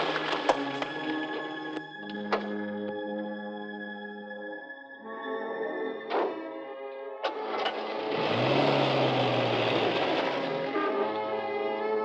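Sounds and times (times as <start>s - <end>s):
film score music: 0.0s - 12.0s
vehicle engine running: 7.3s - 11.0s.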